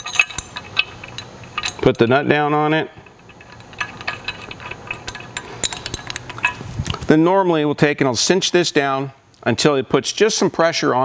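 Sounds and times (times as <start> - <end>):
metallic clicks of nut and bolt: 0.0 - 2.1, 3.0 - 7.0.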